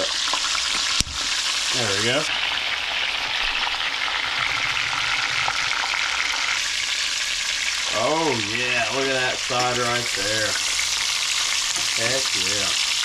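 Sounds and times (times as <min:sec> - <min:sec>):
fish sizzling in hot oil: 0:00.0 - 0:13.0.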